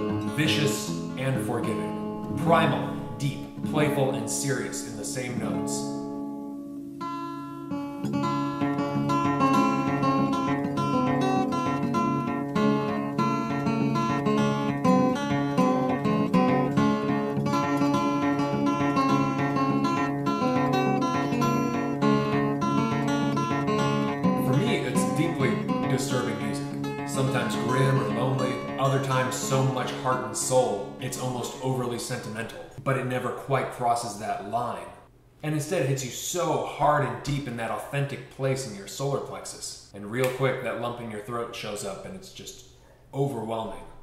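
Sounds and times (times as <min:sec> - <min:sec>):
person's voice: 0:00.0 - 0:06.0, 0:24.4 - 0:42.6
fingerpicked acoustic guitar: 0:00.0 - 0:32.5.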